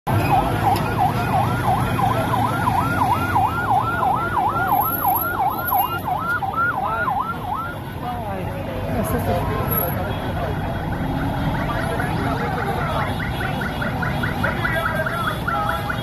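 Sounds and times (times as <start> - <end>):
police siren yelping: 0.1 - 8.0, 11.0 - 16.0
low heavy vehicle engines: 0.1 - 16.0.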